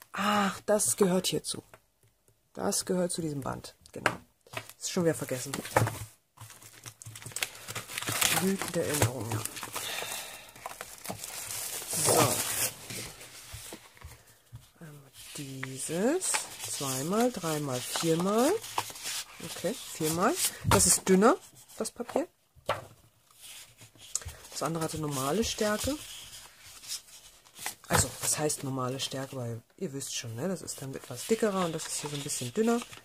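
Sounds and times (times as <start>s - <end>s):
cellophane crinkling: 6.4s - 14.4s, 15.2s - 20.6s, 30.8s - 33.0s
paper sheets rustling and sliding: 10.8s - 14.4s, 15.1s - 21.6s, 23.4s - 28.6s, 30.8s - 33.0s.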